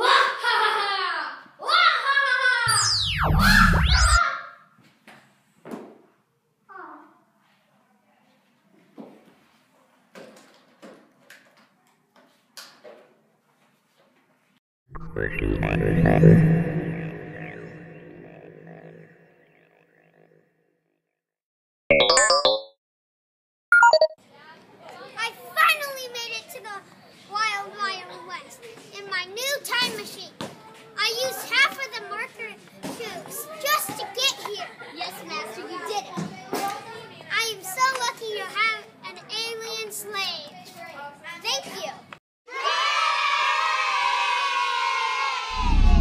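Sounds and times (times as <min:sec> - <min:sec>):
cartoon ringing tones effect: 0:02.7 - 0:04.2, 0:15.0 - 0:20.4
steady loud sound: 0:02.7 - 0:04.2, 0:15.0 - 0:20.3, 0:45.5 - 0:46.0
children talking and calling out: 0:24.4 - 0:42.8.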